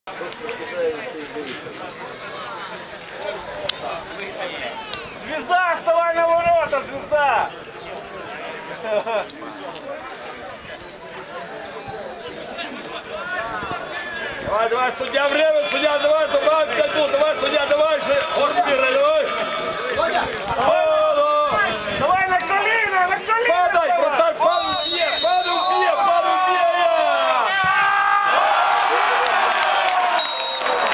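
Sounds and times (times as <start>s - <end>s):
voices calling out and chatting: 0.1s - 27.9s
drawn-out shout: 23.0s - 30.9s
referee's whistle blowing: 24.4s - 26.0s, 30.1s - 30.9s.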